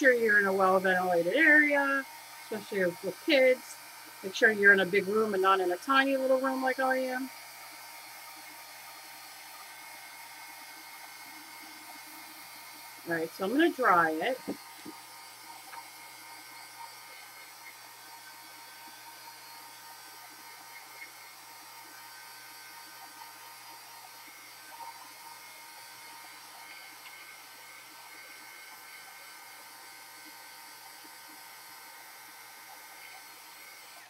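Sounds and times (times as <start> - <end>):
heat gun blowing: 0.0 - 34.0.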